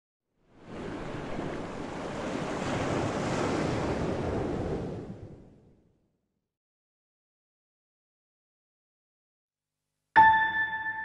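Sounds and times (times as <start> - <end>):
rushing water: 0.6 - 4.9.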